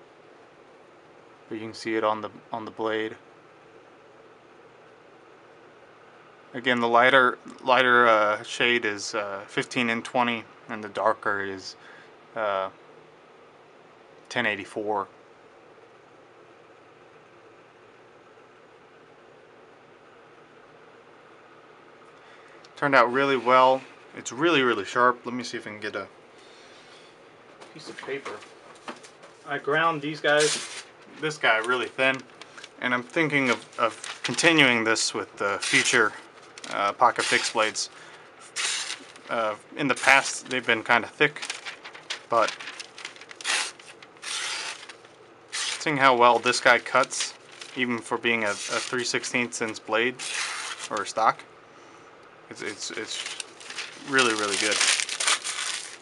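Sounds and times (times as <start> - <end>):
knife slicing paper: 30.3 - 30.9, 35.6 - 36.0, 37.1 - 37.7, 38.4 - 39.3, 41.3 - 47.8, 48.4 - 49.1, 50.1 - 51.0, 52.8 - 56.0
low hum: 41.4 - 45.0.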